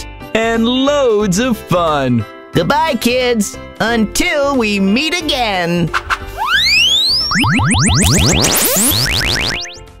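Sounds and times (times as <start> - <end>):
rising whistle glide: 6.3 - 9.8
short rising chirps: 6.4 - 9.8.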